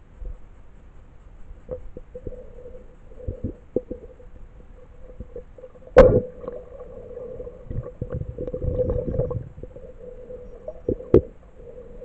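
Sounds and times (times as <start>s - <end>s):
steady underwater hum: 0.0s - 12.0s
low water rumbles: 1.6s - 12.0s.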